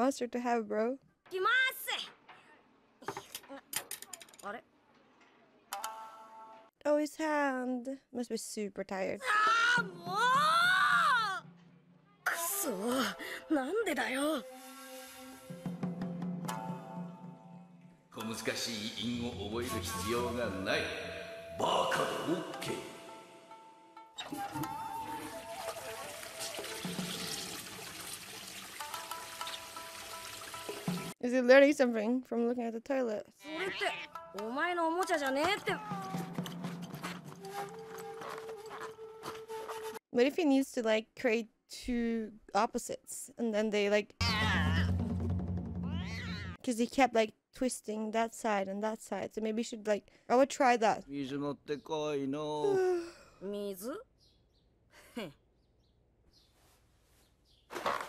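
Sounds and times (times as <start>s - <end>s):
soft background music: 12.3s - 27.3s
toilet flushing: 25.1s - 31.2s.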